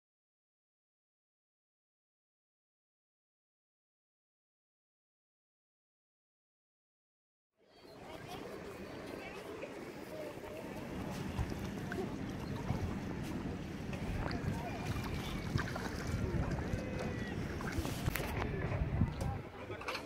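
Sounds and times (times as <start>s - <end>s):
distant voices of people and children: 7.6s - 20.0s
wind rumbling on microphone: 10.6s - 19.6s.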